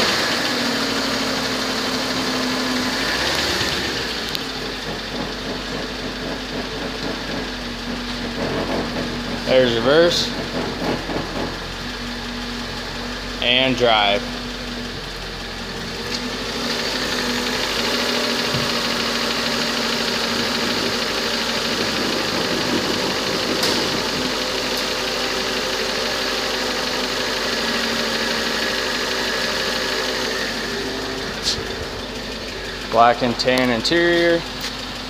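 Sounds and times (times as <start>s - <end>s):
car engine idling: 0.0s - 35.0s.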